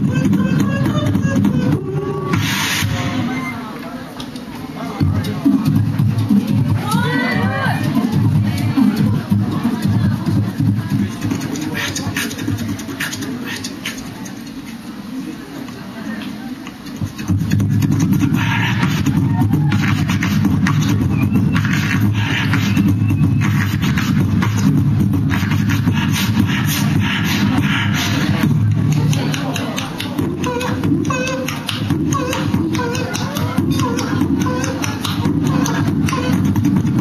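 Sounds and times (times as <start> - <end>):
person beatboxing into microphone: 0.0 - 3.6, 4.2 - 15.0, 16.6 - 37.0.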